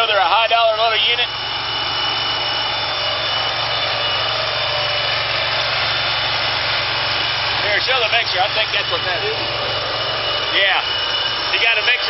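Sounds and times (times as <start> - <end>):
engine humming and hissing: 0.0 - 12.0
thin steady high tone: 0.0 - 12.0.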